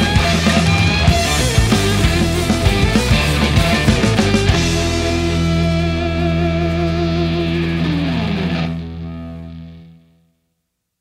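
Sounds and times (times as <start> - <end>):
electric guitar and bass chord: 0.0 - 10.4.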